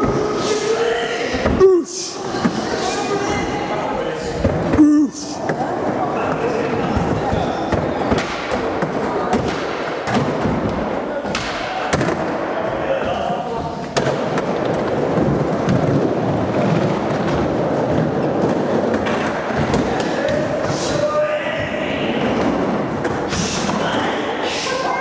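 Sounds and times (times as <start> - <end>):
people chattering: 0.0 - 25.0
skateboards clacking on surface: 13.9 - 21.0
skateboards rolling on concrete: 14.3 - 20.1.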